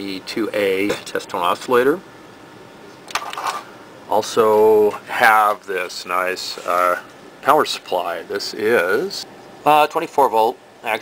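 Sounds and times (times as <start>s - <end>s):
room hiss: 3.7s - 11.0s.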